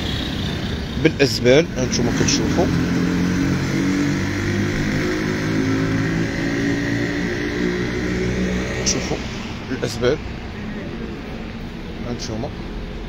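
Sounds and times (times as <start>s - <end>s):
vehicle engine running: 0.0s - 13.0s.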